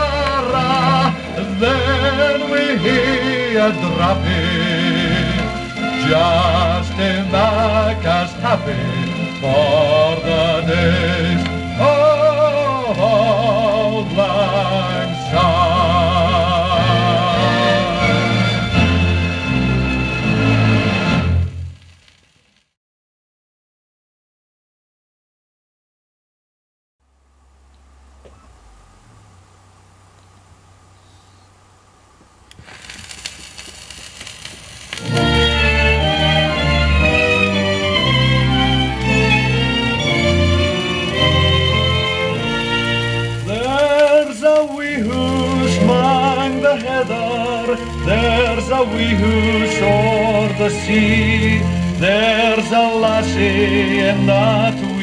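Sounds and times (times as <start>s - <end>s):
man singing with vibrato: 0.0s - 19.3s, 35.0s - 55.0s
orchestral music on old record: 0.0s - 22.0s, 34.8s - 55.0s
orchestral chord: 35.0s - 44.0s.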